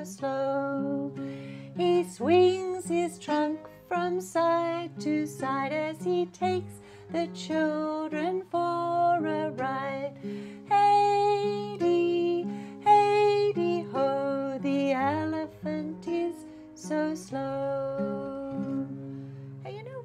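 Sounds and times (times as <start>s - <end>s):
woman singing: 0.0s - 19.0s, 19.6s - 20.0s
classical guitar chords: 0.0s - 20.0s.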